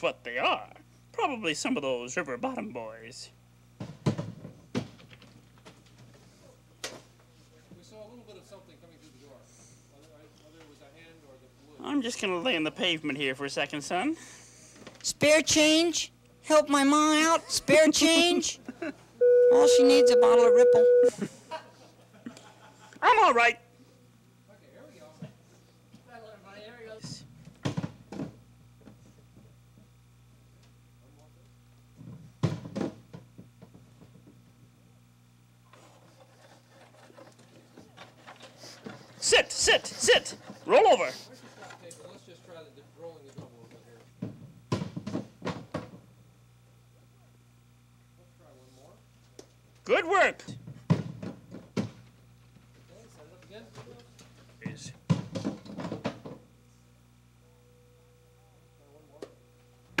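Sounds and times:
tape hum: 0:19.2 - 0:21.2
person exclaiming: 0:39.2 - 0:41.1.

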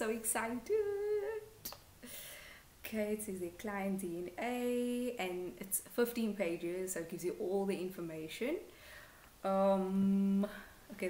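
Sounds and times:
woman humming: 0:00.6 - 0:01.6
soft breath: 0:02.0 - 0:02.7, 0:08.7 - 0:09.4.

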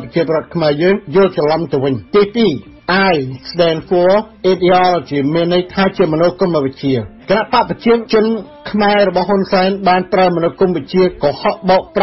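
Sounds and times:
narrator reading: 0:00.0 - 0:12.0.

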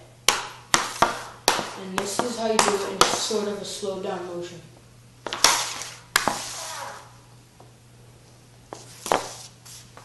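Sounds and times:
stick scraping floor: 0:05.3 - 0:07.2, 0:08.7 - 0:10.0.

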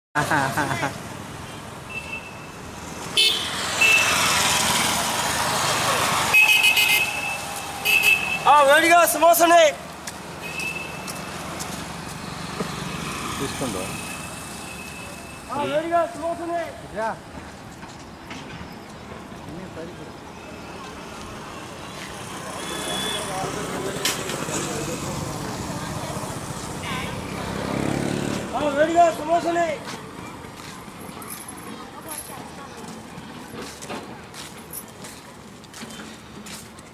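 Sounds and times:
road traffic: 0:00.2 - 0:36.9
vehicle horn: 0:03.2 - 0:04.3, 0:06.3 - 0:08.6.

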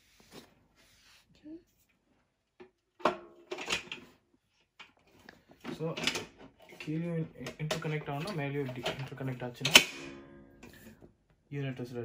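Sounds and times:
person speaking: 0:06.8 - 0:09.8.

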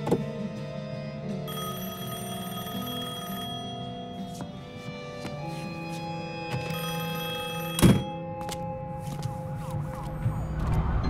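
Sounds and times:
sustained music: 0:00.0 - 0:11.0
telephone ringing: 0:01.5 - 0:05.5, 0:06.4 - 0:08.5.

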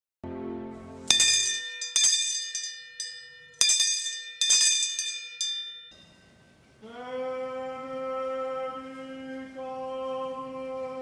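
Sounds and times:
handbell ringing: 0:01.1 - 0:06.3.

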